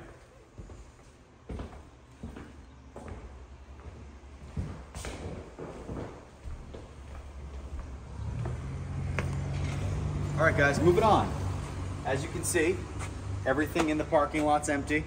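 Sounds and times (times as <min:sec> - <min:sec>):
footsteps on a hard floor: 0:00.1 - 0:09.8.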